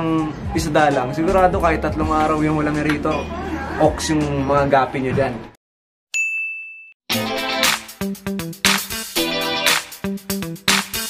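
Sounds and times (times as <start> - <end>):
bell-like ding: 3.1 - 3.4, 6.1 - 7.0.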